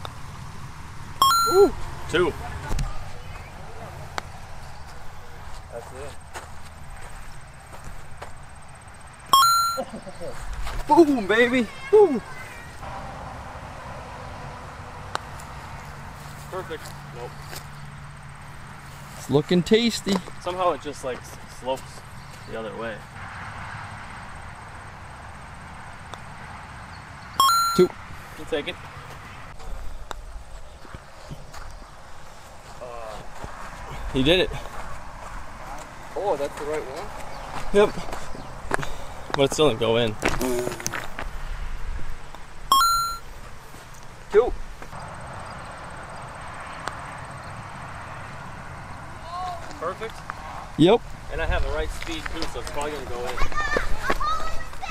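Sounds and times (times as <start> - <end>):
electronic two-note beep: 1.2 - 1.8, 9.4 - 9.9, 27.4 - 28.0, 42.7 - 43.2.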